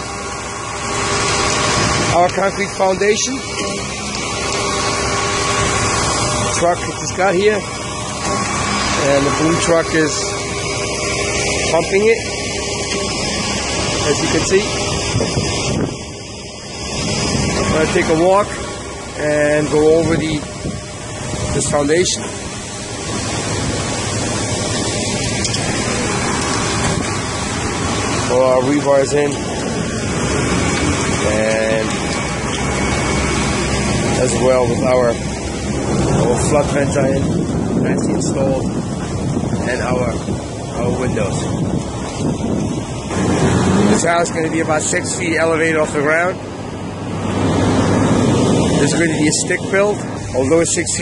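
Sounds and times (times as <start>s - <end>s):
concrete pump rushing: 0.0s - 51.0s
low engine hum: 0.0s - 51.0s
wind buffeting microphone: 0.0s - 51.0s.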